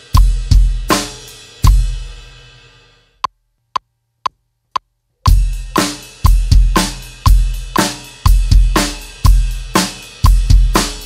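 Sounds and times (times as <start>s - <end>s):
metronome clicks: 3.2s - 5.4s.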